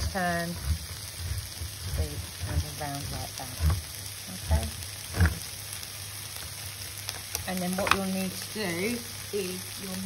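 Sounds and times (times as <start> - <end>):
vegetables sizzling in a pan: 0.0 - 10.0.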